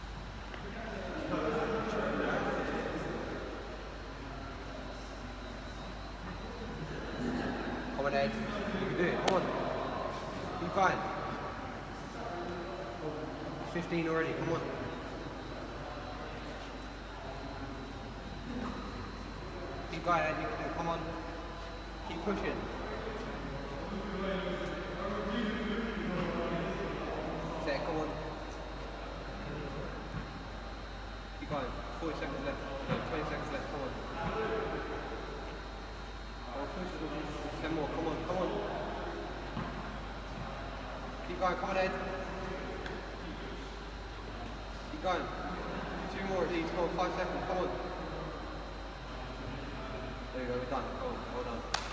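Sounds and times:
sports hall background noise: 0.0 - 51.9.

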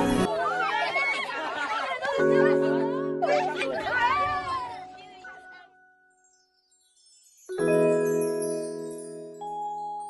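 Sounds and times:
music: 0.0 - 0.7, 2.0 - 10.0.

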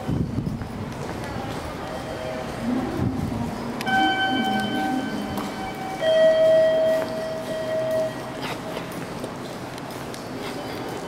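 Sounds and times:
two-note electronic chime: 3.9 - 8.4.

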